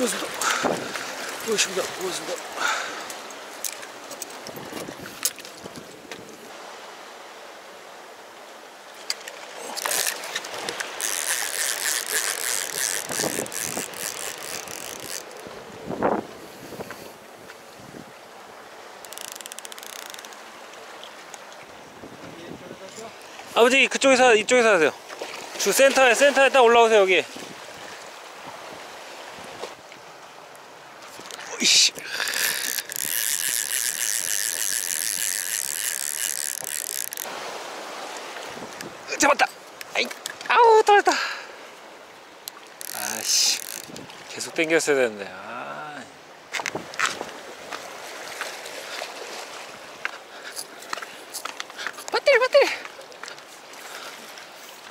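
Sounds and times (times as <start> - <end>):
seawater splashing against rocks: 0.0 - 6.8, 8.8 - 40.7, 41.7 - 45.2
fishing reel whirring: 9.6 - 15.5, 19.0 - 20.5, 31.2 - 37.4, 42.5 - 44.0
fast fine ticking: 11.0 - 15.4, 19.1 - 20.4, 32.0 - 37.3, 42.8 - 43.9.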